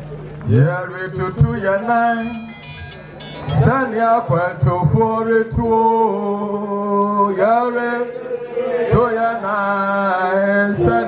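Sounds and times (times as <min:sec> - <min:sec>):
man singing: 0:00.5 - 0:02.7, 0:03.5 - 0:11.0.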